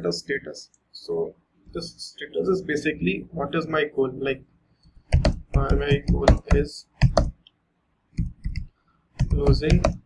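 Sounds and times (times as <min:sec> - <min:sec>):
computer keyboard typing: 0:05.0 - 0:07.4, 0:08.2 - 0:10.0.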